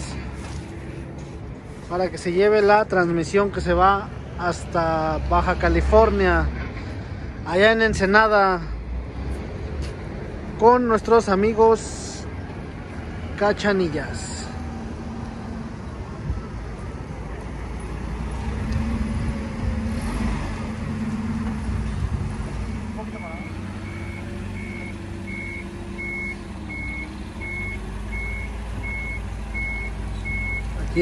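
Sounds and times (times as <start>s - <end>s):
forklift engine running: 14.7s - 31.0s
warning beeper beeping: 22.8s - 30.7s.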